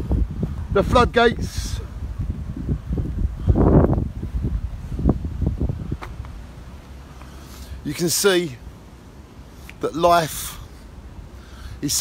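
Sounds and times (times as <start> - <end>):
wind buffeting microphone: 0.0 - 7.0.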